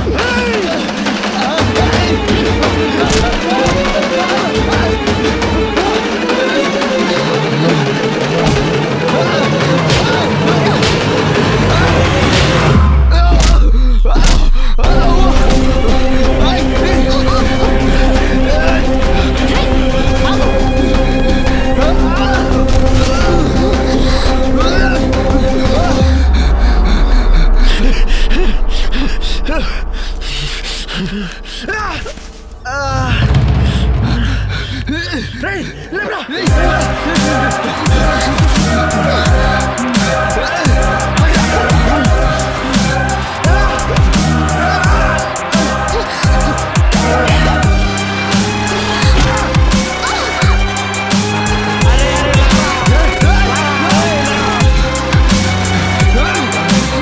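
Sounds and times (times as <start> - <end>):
background music: 0.0 - 57.0
deep bass sliding down: 14.8 - 34.5
man panting while running: 33.6 - 35.9.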